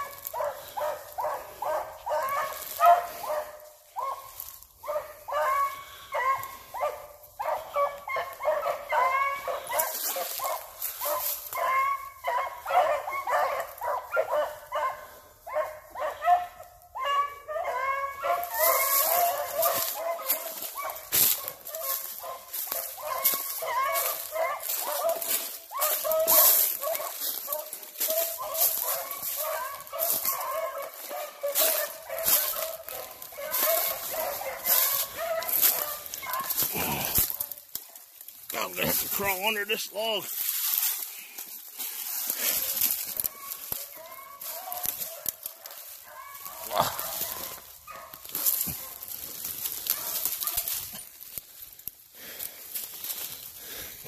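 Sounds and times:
hounds baying: 0.0 - 54.0
brush rustling and snapping: 7.4 - 12.4, 18.2 - 39.4, 40.3 - 53.6.

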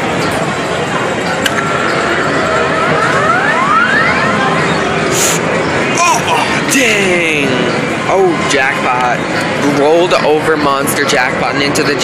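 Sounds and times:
din of busy arcade: 0.0 - 12.0
overlapping rising electronic tones: 1.6 - 9.6.

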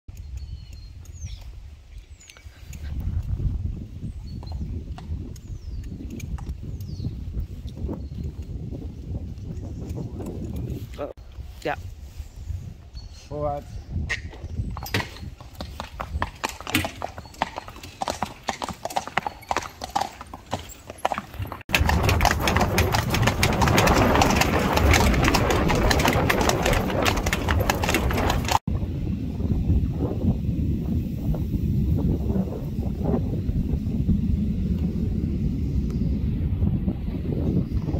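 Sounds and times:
hoofbeats on road: 14.1 - 28.7
hooves shifting on bricks: 14.2 - 28.7
harness clinking: 14.8 - 28.6.

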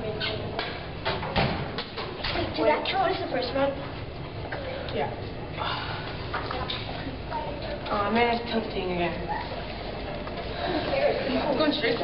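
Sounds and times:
children's voices chattering: 6.1 - 8.0, 9.0 - 12.0.

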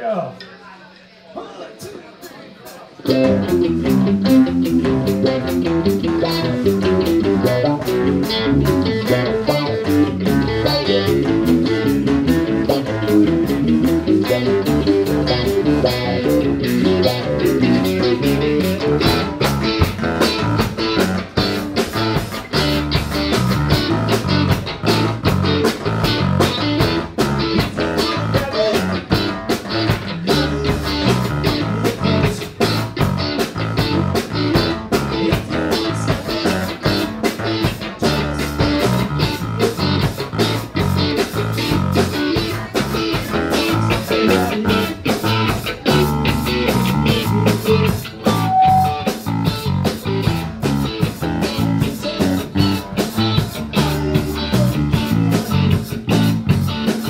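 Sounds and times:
bass guitar: 3.0 - 57.0
drum kit fast beat: 3.0 - 57.0
electric guitar: 3.0 - 57.0.

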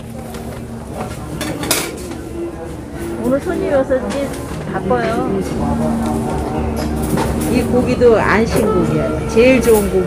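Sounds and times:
market background noise: 0.0 - 10.0
metal kitchenware clattering: 1.4 - 2.1.

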